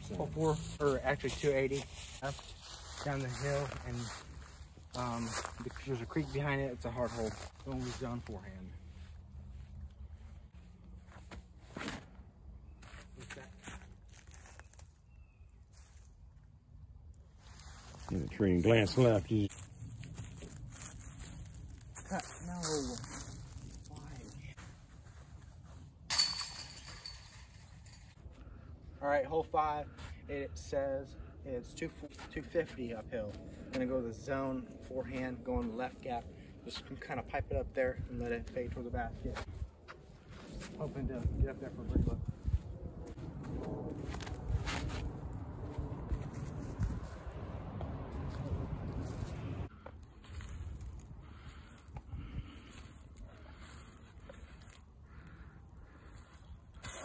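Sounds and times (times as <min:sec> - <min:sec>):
footsteps in dry leaves: 0:00.0 - 0:16.4, 0:17.1 - 0:26.1, 0:39.3 - 0:57.0
chains jangling: 0:26.1 - 0:28.2
disc striking basket chains: 0:26.1 - 0:28.2.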